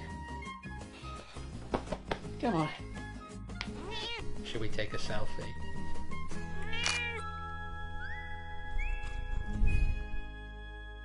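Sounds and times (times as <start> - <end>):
background music with held notes: 0.0 - 11.0
cat meowing: 3.7 - 4.4, 6.6 - 7.2.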